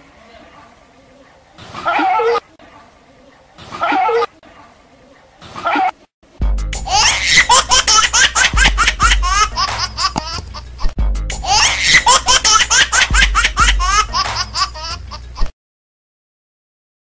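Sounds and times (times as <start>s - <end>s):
background music with low bass: 6.3s - 15.5s
high-pitched rapid giggling: 6.8s - 15.5s.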